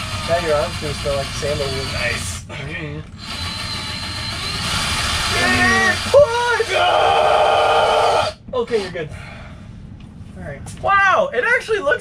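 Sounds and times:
cordless drill whining: 0.0s - 0.8s, 3.2s - 6.2s.

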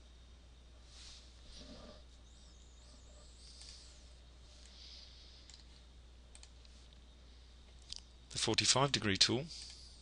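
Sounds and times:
low steady hum: 0.0s - 10.0s
computer mouse clicks: 3.5s - 3.8s, 5.4s - 5.7s, 6.3s - 7.0s.

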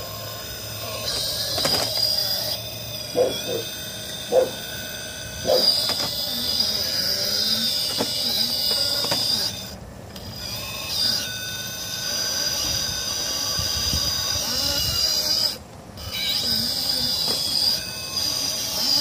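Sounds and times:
motor and drivetrain whining: 0.0s - 19.0s.

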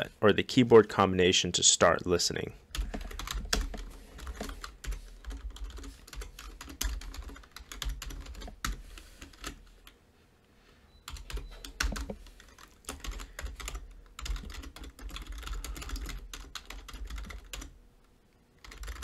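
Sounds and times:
keyboard typing clicks: 11.1s - 17.7s.

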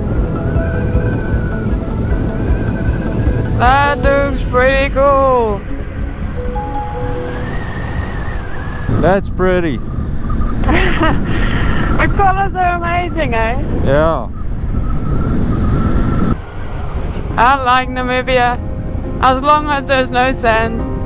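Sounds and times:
wind on microphone: 0.0s - 21.0s
motorcycle engine rumble: 8.2s - 18.0s
person talking: 8.9s - 9.8s.

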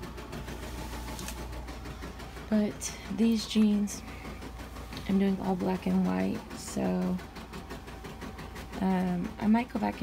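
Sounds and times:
low motor hum: 0.0s - 10.0s
rapid needle strokes: 0.0s - 10.0s.

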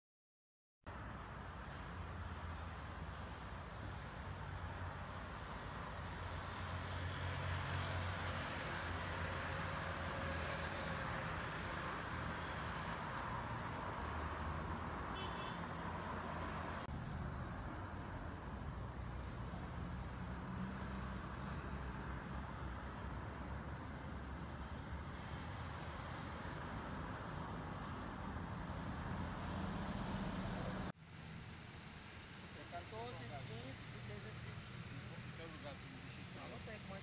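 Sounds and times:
traffic noise: 0.9s - 37.0s
bus passing: 1.0s - 37.0s
cars passing: 1.0s - 37.0s.

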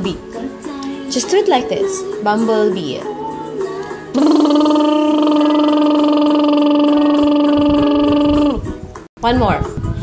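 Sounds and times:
woman humming a buzzing tone: 4.2s - 8.7s.

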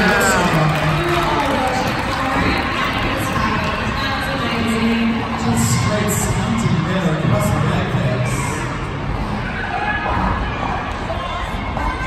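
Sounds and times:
crowd cheering: 0.0s - 4.5s.

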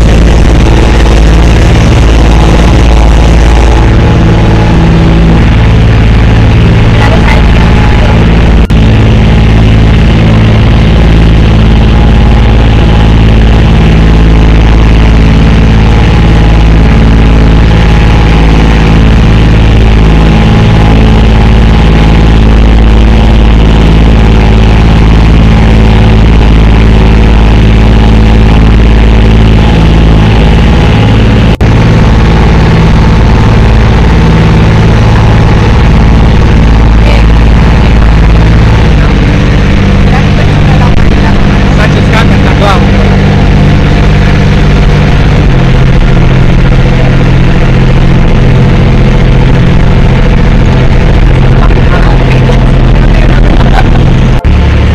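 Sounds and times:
motorboat engine running: 0.0s - 54.9s.

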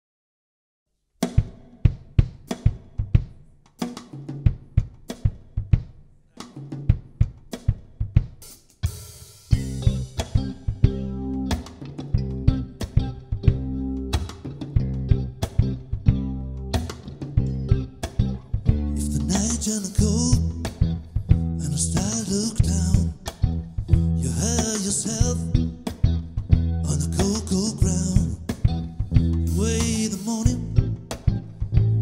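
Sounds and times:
drum kit groove: 1.2s - 32.0s
electric bass: 9.5s - 32.0s
electric guitar: 9.5s - 32.0s.

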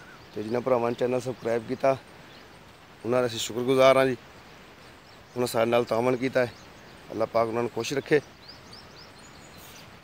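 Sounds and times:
outdoor background hiss: 0.0s - 10.0s
small birds chirping: 0.0s - 10.0s.

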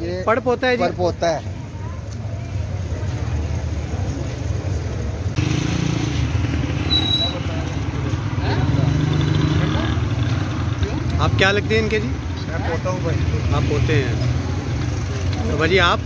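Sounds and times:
traffic rumble: 0.0s - 16.0s.

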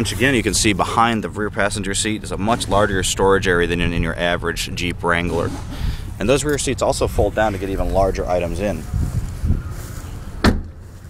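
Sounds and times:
low rumbling noise: 0.0s - 11.0s.

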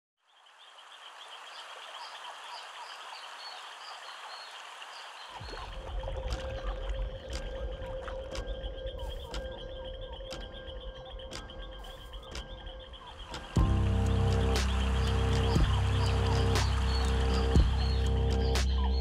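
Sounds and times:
frogs and insects: 0.2s - 19.0s
deep low rumble: 13.6s - 19.0s.

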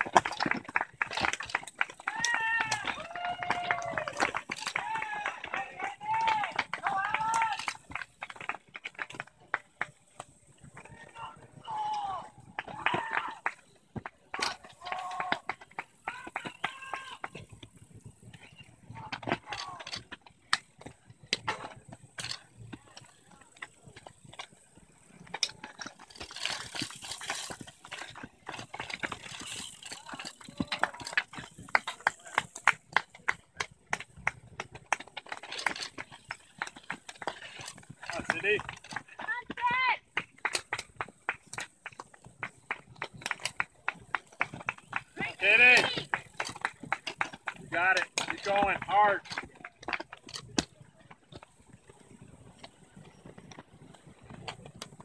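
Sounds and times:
shoes and bike frames knocking: 0.0s - 55.0s
person shouting encouragement: 39.3s - 40.0s.

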